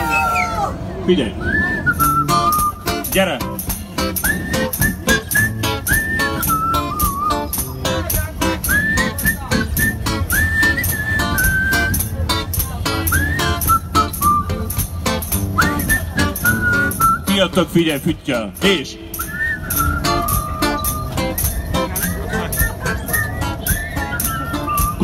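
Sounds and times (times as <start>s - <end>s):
man whistling a melody: 1.4s - 17.6s, 19.1s - 25.0s
sharp percussive clicks beat: 9.8s - 17.4s.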